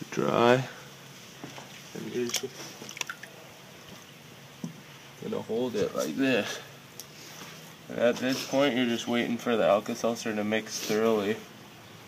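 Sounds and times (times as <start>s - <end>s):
faint water splashes: 1.3s - 5.3s.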